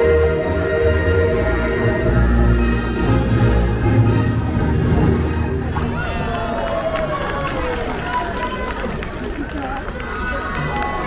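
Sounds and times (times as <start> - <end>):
parade music outdoors: 0.0 - 6.0.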